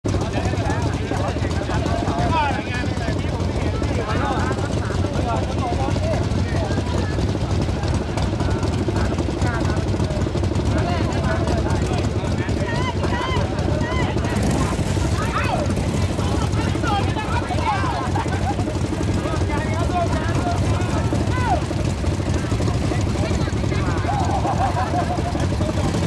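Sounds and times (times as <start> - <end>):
motorcycle engine running: 0.0 - 26.0
people talking: 0.1 - 26.0.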